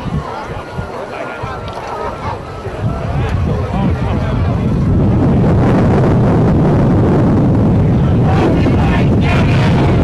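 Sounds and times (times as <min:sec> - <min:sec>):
faint crowd voices: 0:00.0 - 0:10.0
wind buffeting microphone: 0:00.0 - 0:10.0.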